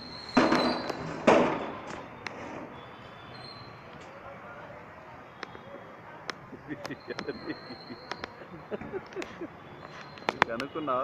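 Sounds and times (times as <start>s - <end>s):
loud bangs: 0.3s - 2.7s.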